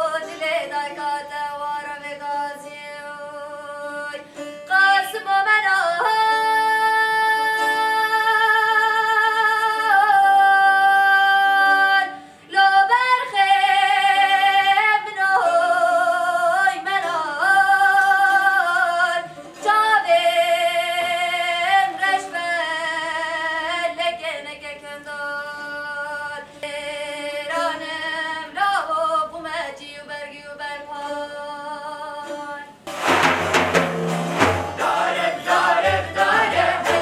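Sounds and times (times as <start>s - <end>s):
woman singing with vibrato: 0.0s - 32.8s, 34.8s - 37.0s.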